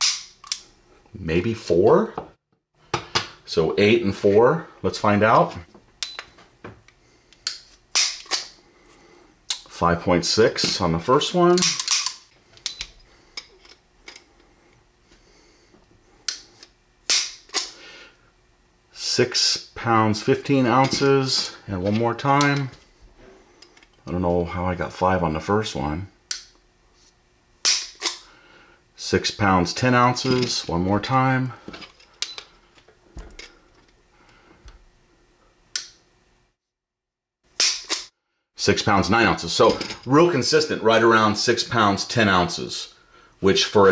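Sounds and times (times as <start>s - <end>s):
metallic clicks of pistol handling: 11.6s - 12.9s.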